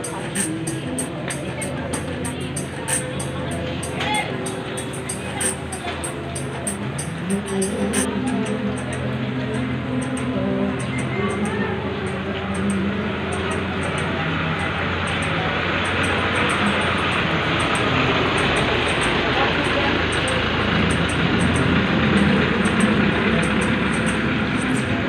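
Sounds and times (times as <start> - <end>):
many people talking: 0.0 - 25.0
vehicle traffic: 0.0 - 25.0.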